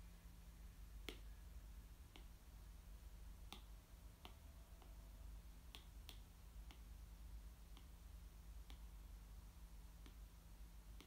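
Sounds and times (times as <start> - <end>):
low steady hum: 0.0 - 11.0
faint sharp clicks: 2.1 - 2.4, 3.5 - 5.0, 5.6 - 7.0, 7.7 - 8.0, 8.6 - 9.0, 10.0 - 10.3.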